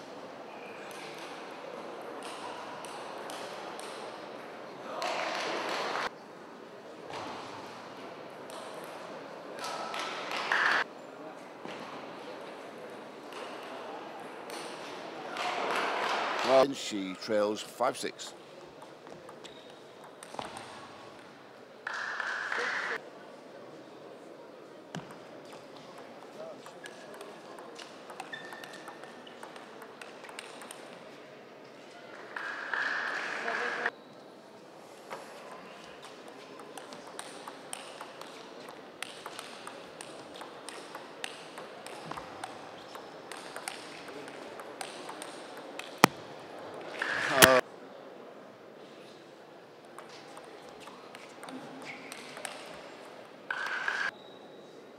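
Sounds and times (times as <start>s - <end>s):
crowd noise: 0.0s - 54.9s
table tennis ball clicking: 25.0s - 31.0s, 36.6s - 46.2s, 51.1s - 52.8s.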